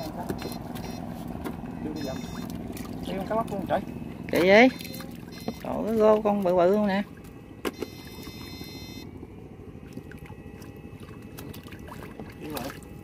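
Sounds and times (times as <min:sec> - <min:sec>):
boat machinery drone: 0:00.0 - 0:13.0
high electronic whine: 0:01.8 - 0:05.8, 0:07.5 - 0:11.2.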